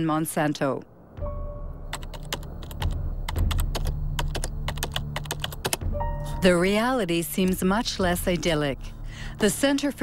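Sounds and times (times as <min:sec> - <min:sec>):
background music with drone: 0:01.0 - 0:10.0.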